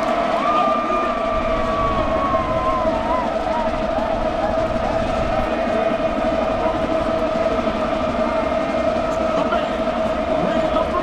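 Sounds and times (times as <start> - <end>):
noisy background: 0.0 - 11.0.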